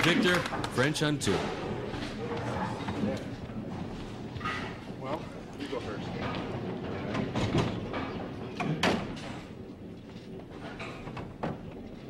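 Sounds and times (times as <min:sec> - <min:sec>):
bowling ball rolling: 0:01.3 - 0:12.0.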